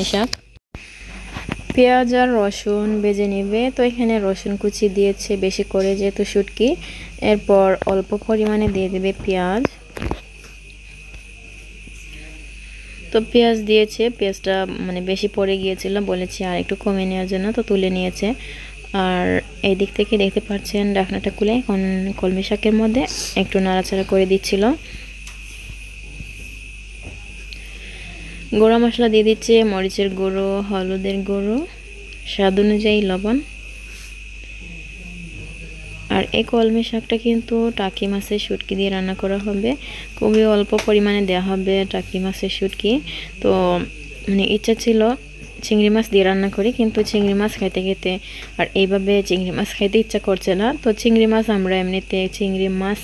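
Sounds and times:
person talking: 0.0 - 0.4, 1.6 - 10.3
crickets trilling: 0.0 - 53.0.

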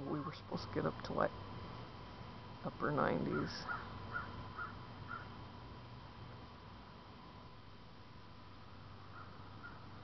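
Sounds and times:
bird calling: 3.2 - 5.4, 9.0 - 10.0.

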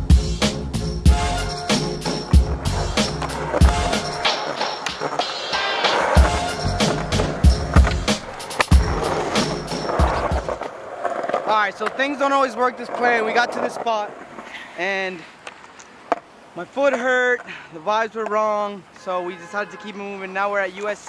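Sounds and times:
backing music with steady beat: 0.0 - 10.6
skateboard wheels scraping concrete: 1.1 - 19.6, 20.2 - 21.0.

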